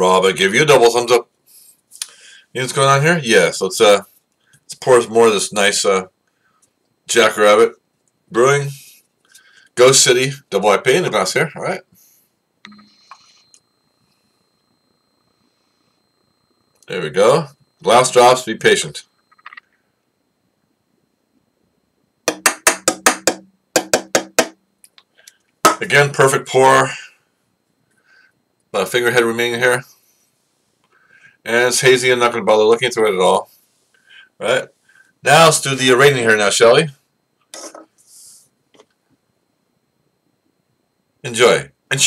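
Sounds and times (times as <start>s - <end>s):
low steady hum: 0.0s - 42.0s
breath hiss: 1.4s - 2.5s, 33.5s - 35.2s, 38.0s - 38.6s
sharp taps: 22.3s - 24.6s.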